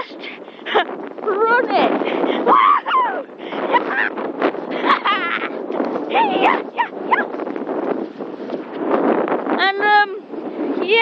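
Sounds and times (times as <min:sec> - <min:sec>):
wind buffeting microphone: 0:00.0 - 0:11.0
high wordless shout: 0:02.4 - 0:04.2, 0:06.1 - 0:07.3
person shouting: 0:02.5 - 0:04.1.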